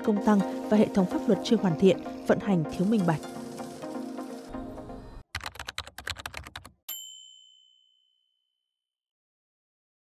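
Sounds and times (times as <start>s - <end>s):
typewriter keystrokes: 5.4s - 6.7s
typewriter bell ding: 6.9s - 8.0s.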